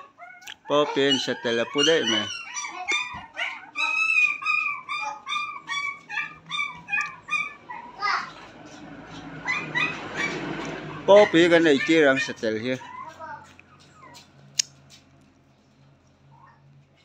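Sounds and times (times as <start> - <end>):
puppy whimpering: 0.0 - 14.5.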